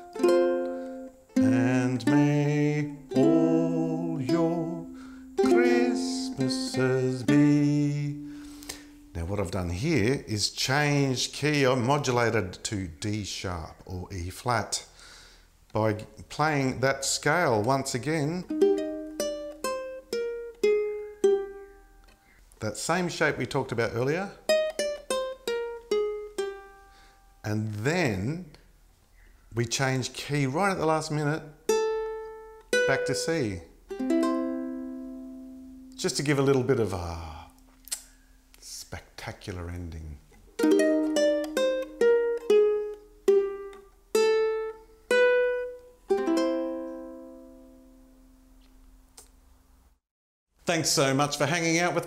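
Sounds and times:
ukulele notes fingerpicked: 0.0s - 9.5s, 18.2s - 22.2s, 24.4s - 27.1s, 31.6s - 38.0s, 40.5s - 48.6s.

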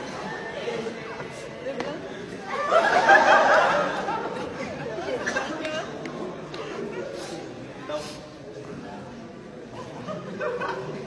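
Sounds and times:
voices chattering in a hall: 0.0s - 11.0s.

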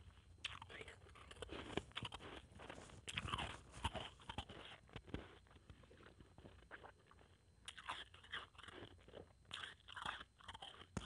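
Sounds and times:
mouth chewing crunchy ice: 0.0s - 11.0s.

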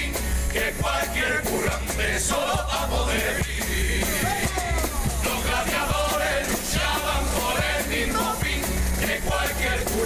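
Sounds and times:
drum beats: 0.0s - 10.0s
guitars playing: 0.0s - 10.0s
men singing: 0.0s - 10.0s.

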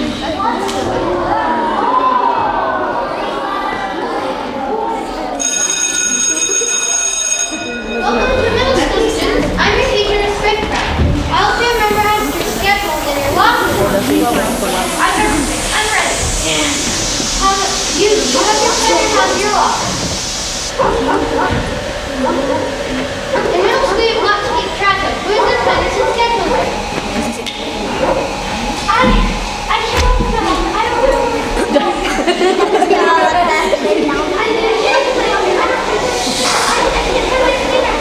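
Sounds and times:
faint voices: 0.0s - 38.0s
bell ringing: 5.4s - 9.4s
steady hiss: 11.3s - 38.0s.

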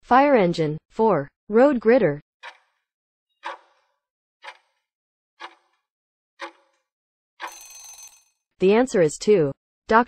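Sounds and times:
timer ticking: 2.4s - 2.6s, 4.4s - 4.8s, 5.4s - 5.7s, 6.4s - 6.7s, 7.4s - 8.0s.

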